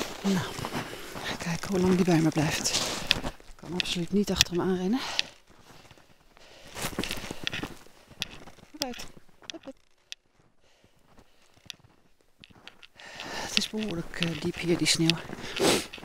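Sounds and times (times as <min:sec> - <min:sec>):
footsteps crunching in deep snow: 0:00.0 - 0:16.0.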